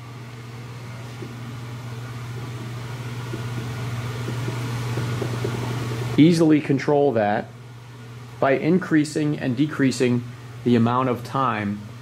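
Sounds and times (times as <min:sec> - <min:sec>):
steady low hum: 0:00.0 - 0:12.0
finger tapping keypad buttons: 0:02.4 - 0:05.7.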